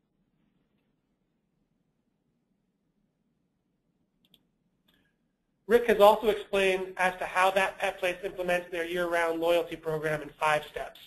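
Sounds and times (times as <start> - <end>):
faint clicks: 4.2 - 5.1.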